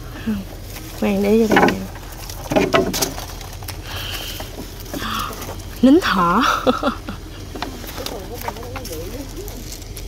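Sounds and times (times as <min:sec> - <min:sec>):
rustling of pods: 0:00.0 - 0:10.0
bean pods snapping: 0:07.5 - 0:10.0.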